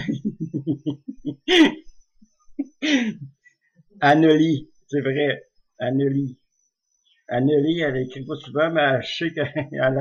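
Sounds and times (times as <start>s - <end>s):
man clearing his throat: 1.5s - 1.8s
man speaking: 4.0s - 6.4s, 7.3s - 10.0s.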